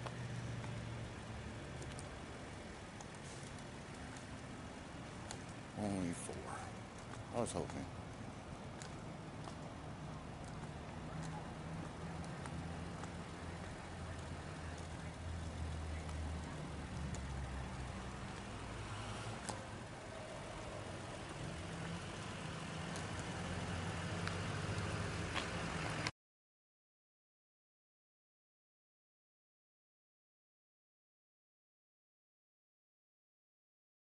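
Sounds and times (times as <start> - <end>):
light ticks: 0.0 - 2.2, 5.2 - 5.6, 10.4 - 13.3, 13.9 - 18.5, 21.8 - 23.3, 24.1 - 26.1
outdoor noise: 0.0 - 26.1
vehicle engine idling: 0.0 - 26.1.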